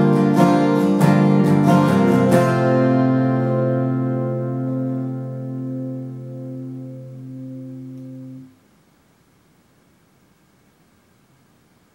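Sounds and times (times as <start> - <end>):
acoustic guitar chord ringing: 0.0 - 8.6
faint room hiss: 0.0 - 11.9.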